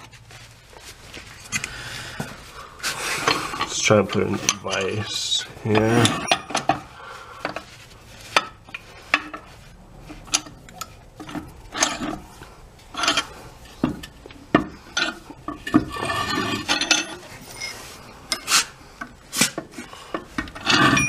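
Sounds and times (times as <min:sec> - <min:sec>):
metal clinks and knocks: 0:05.8 - 0:06.9, 0:10.1 - 0:18.5, 0:20.4 - 0:21.0.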